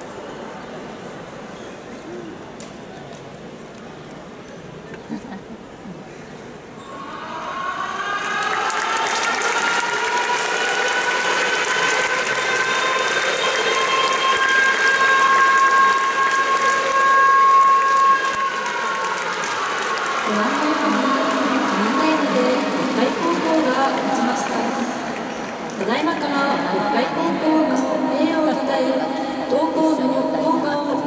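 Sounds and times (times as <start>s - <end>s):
siren wailing: 6.9s - 24.7s
crowd applause: 6.9s - 27.0s.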